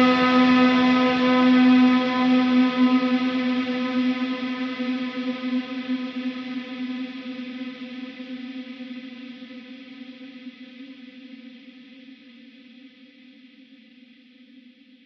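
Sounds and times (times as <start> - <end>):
electric guitar chord ringing: 0.0 - 4.9.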